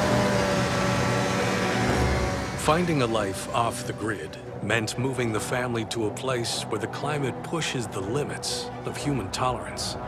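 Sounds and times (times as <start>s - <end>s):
snow vehicle engine droning: 0.0s - 10.0s.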